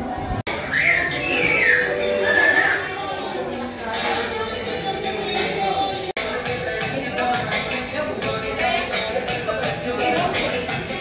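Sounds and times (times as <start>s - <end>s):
voices chattering in a hall: 0.0s - 11.0s.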